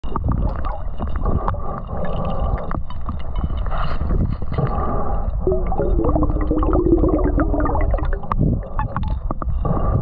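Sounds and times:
underwater rumble of moving water: 0.0s - 10.0s.

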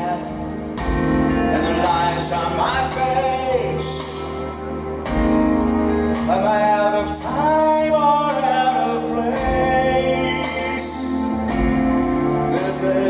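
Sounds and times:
live band playing: 0.0s - 13.0s
person singing: 0.0s - 13.0s.

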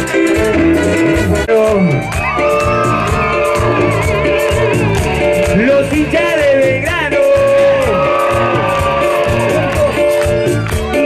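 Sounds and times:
congas: 0.0s - 11.0s
keyboards: 0.0s - 11.0s
live band music: 0.0s - 11.0s
person singing: 0.0s - 11.0s.

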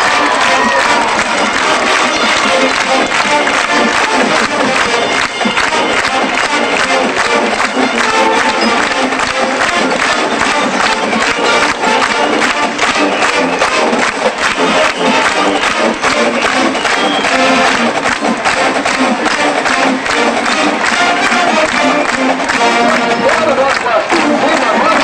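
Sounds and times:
crowd noise: 0.0s - 25.0s
marching band playing: 0.0s - 25.0s.

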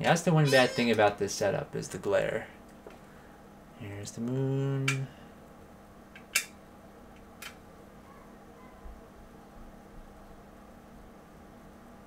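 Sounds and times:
low hum of room tone: 0.0s - 12.0s.

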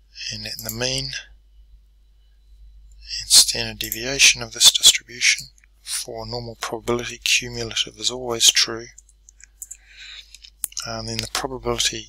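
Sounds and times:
computer input clicks: 3.8s - 4.1s.

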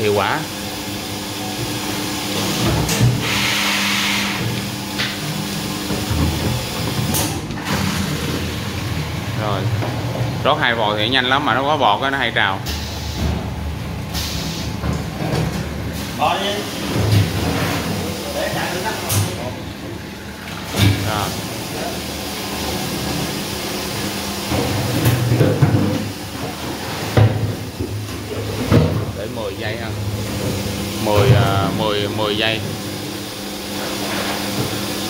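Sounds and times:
low machine hum: 4.2s - 34.2s.

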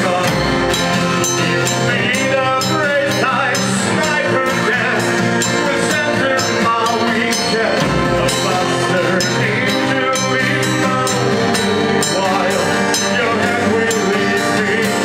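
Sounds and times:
drums and percussion beat: 0.0s - 15.0s
folk band playing live: 0.0s - 15.0s
man singing into a microphone: 0.0s - 15.0s.

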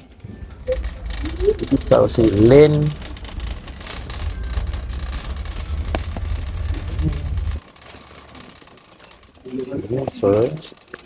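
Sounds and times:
shopping cart wheels rumbling: 0.0s - 11.0s.

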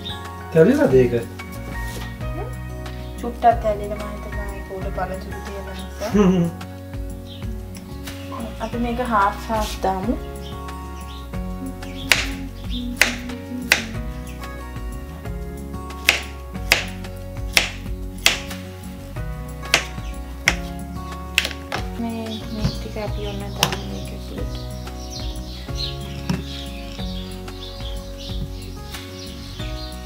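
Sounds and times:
background music: 0.0s - 30.0s
knife chopping on wooden board: 12.1s - 12.4s, 13.0s - 14.0s, 16.0s - 18.5s, 19.7s - 20.7s, 21.4s - 21.8s.

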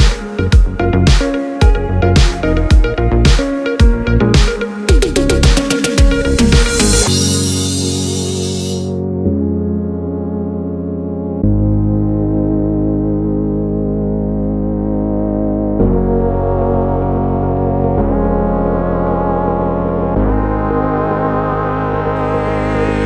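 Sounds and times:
slow synthesizer chords: 0.0s - 23.0s.

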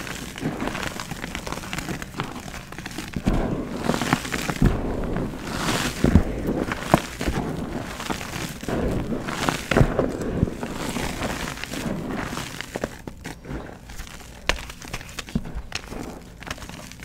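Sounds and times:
chalk crumbling and crunching in hands: 0.0s - 17.0s
chalk powder sifting: 0.0s - 17.0s.

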